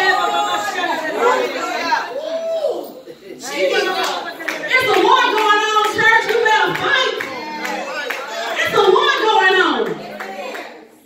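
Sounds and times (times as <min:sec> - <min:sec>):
voices talking over one another: 0:03.4 - 0:10.9.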